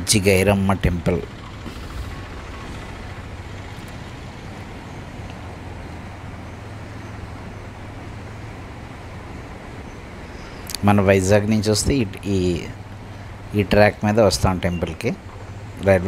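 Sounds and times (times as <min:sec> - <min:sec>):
motorcycle engine hum: 0:00.0 - 0:16.0
wind and road noise: 0:00.0 - 0:16.0.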